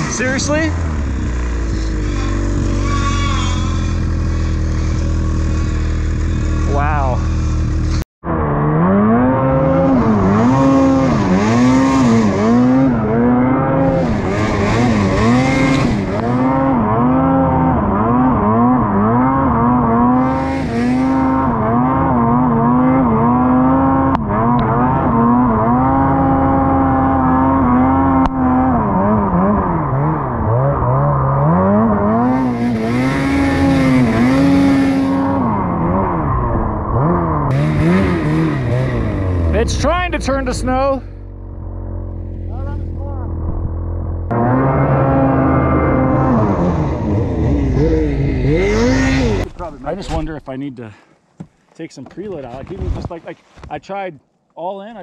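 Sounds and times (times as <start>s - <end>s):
snowmobile engine revving: 0.0s - 43.5s, 44.3s - 50.6s.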